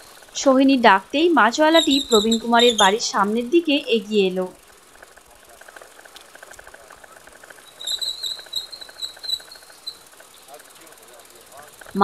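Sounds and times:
fast light ticks: 0.0 - 12.0.

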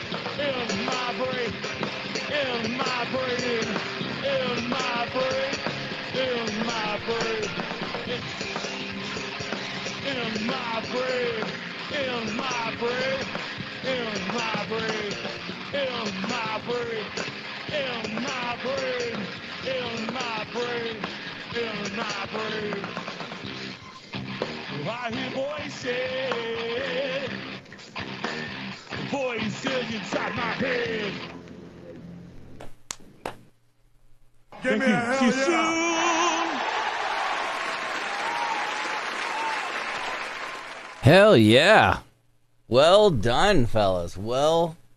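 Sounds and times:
rock band playing live: 0.0 - 27.1.

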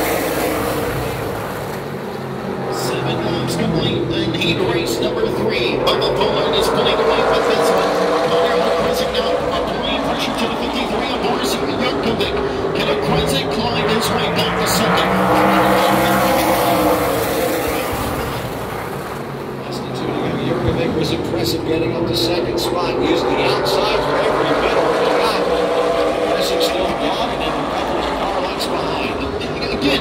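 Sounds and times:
race car engines: 0.0 - 30.0.

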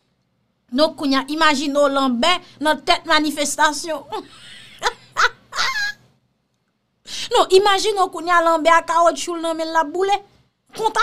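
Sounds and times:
woman laughing: 4.1 - 6.0.

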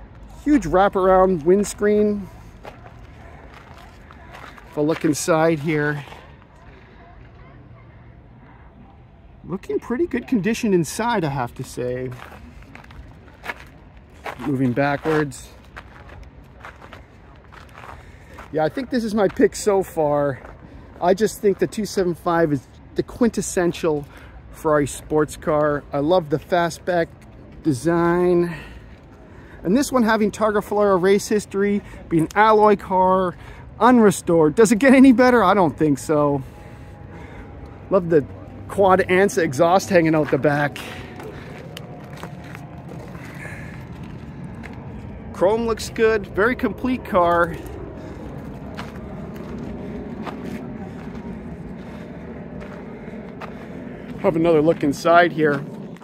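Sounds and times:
faint footsteps: 0.0 - 8.8, 9.5 - 22.9, 35.5 - 56.0
outdoor background: 0.0 - 56.0
low rumble: 46.2 - 56.0.

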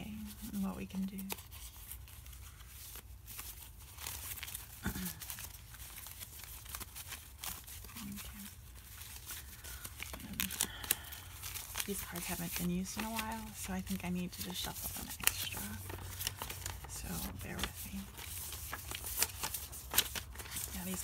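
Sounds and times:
paper cards being shuffled: 0.0 - 21.0.

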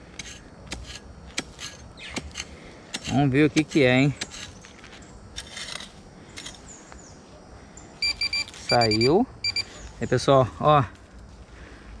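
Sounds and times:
hand hoe scraping soil: 0.0 - 6.6
metal detector rapid beeps: 8.0 - 9.7.

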